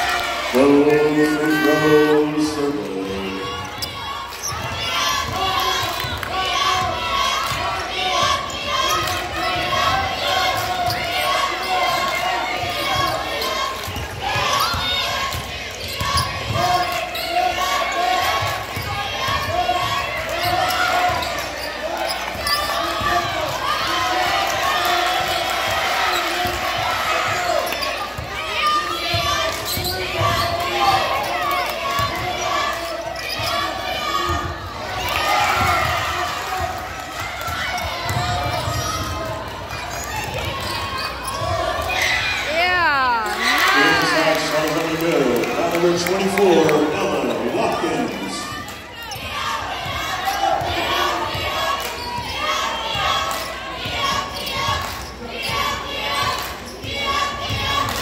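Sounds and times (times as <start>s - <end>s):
crowd voices echoing: 0.0s - 58.0s.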